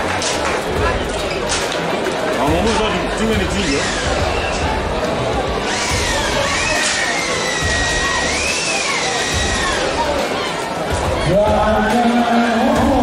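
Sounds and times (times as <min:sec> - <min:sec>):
spectators cheering: 0:05.6 - 0:13.0.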